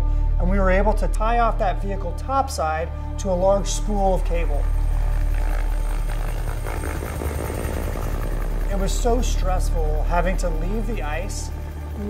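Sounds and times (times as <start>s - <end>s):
helicopter rotor beating: 3.5s - 12.0s
helicopter engine noise: 3.8s - 12.0s.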